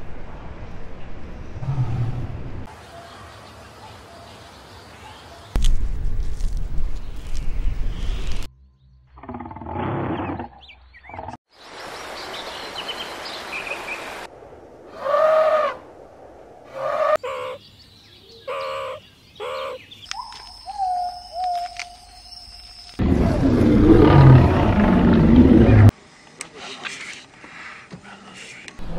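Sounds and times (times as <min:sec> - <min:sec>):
bird chirps: 0:17.2 - 0:23.0.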